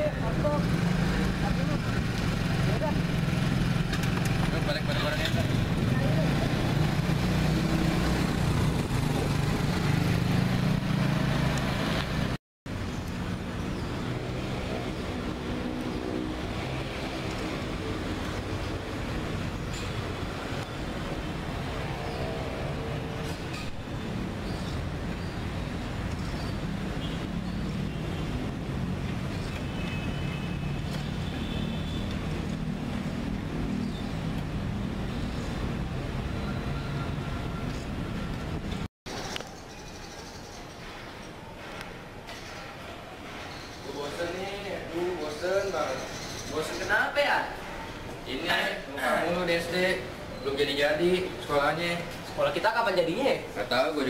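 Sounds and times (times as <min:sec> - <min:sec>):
scooter riding in traffic: 0:00.0 - 0:54.0.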